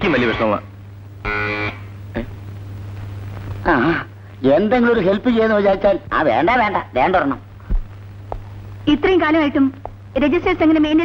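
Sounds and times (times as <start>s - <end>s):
low steady hum: 0.0s - 11.0s
short electric buzz: 1.2s - 2.0s.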